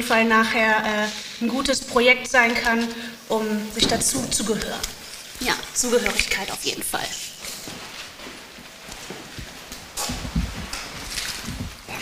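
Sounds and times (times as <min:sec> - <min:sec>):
footsteps on hard floor: 0:03.8 - 0:12.0.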